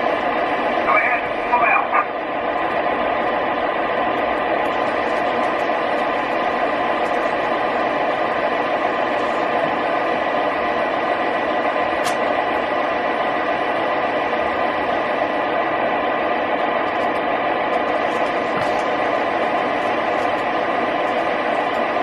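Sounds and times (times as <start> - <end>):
model train diesel sound rumble: 0.0 - 22.0
radio voice chatter: 0.6 - 2.2
model train wheels on track: 3.4 - 22.0.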